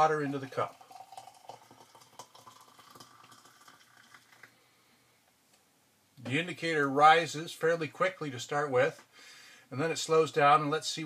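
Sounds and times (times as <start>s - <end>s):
water pouring into a mug: 0.0s - 4.6s.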